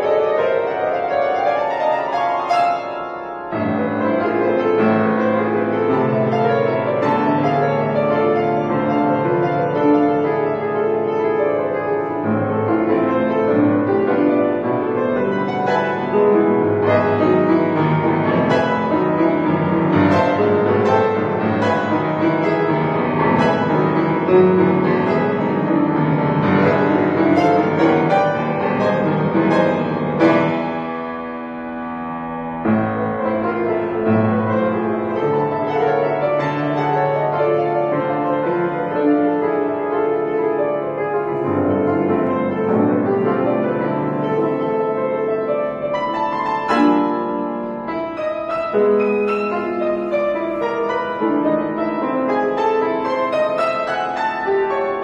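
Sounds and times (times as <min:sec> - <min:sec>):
solo grand piano: 0:00.0 - 0:55.0.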